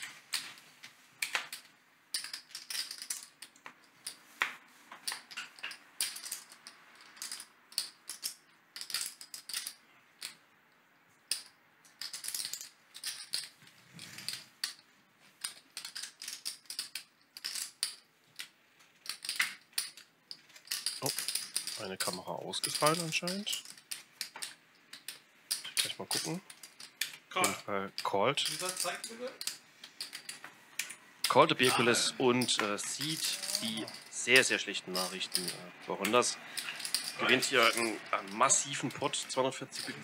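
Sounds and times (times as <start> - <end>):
clay poker chips clicking: 0.0 - 40.0.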